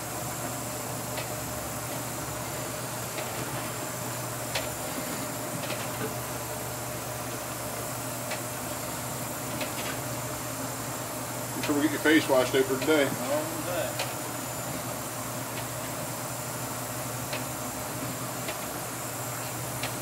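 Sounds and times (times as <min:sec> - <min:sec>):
boat engines droning: 0:01.7 - 0:16.8.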